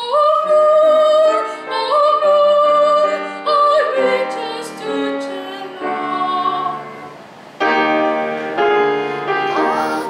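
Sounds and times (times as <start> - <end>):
woman singing classically: 0.0 - 7.0, 9.2 - 10.0
grand piano chords: 0.0 - 10.0.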